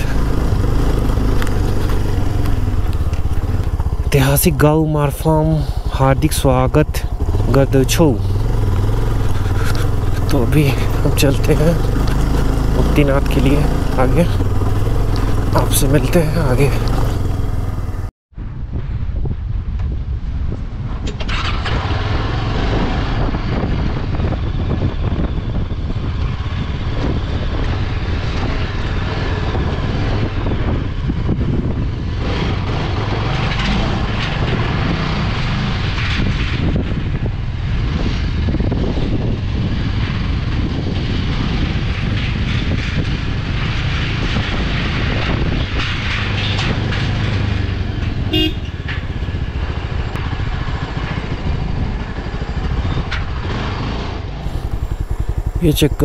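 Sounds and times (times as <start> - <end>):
motorcycle engine running: 0.0 - 18.1, 22.4 - 56.0
wind on microphone: 0.0 - 56.0
short horn toot: 48.3 - 48.8.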